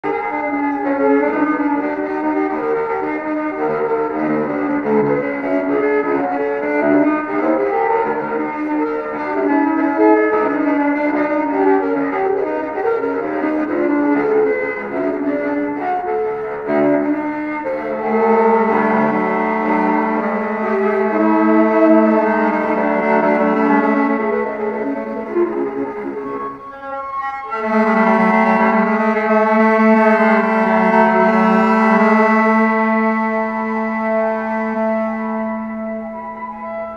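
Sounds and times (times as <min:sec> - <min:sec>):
bowed cello music: 0:00.0 - 0:36.9.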